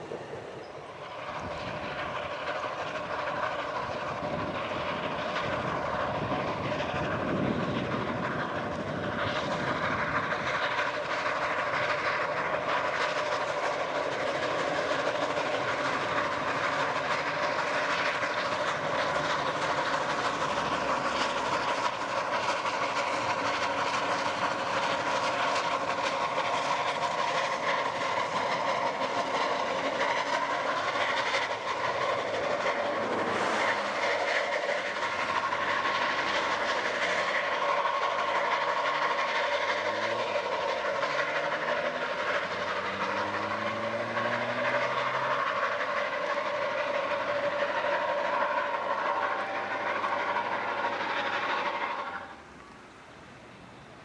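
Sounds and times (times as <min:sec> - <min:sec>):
carriages clattering on rails: 0:00.0 - 0:52.6
hissing steam: 0:00.0 - 0:54.0
steam locomotive exhaust: 0:00.0 - 0:54.0.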